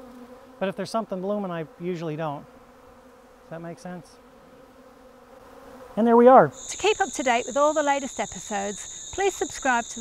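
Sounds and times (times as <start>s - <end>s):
honey bees buzzing: 0.0s - 10.0s.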